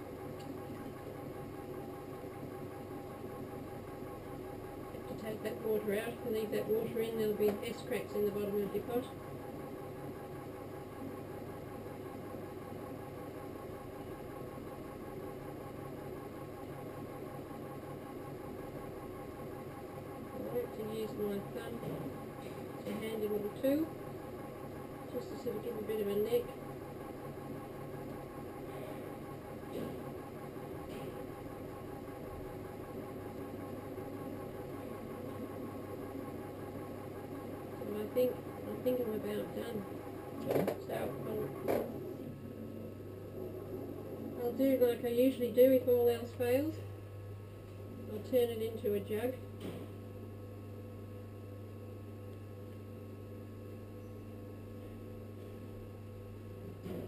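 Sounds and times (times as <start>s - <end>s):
potter's wheel motor humming: 0.0s - 52.0s.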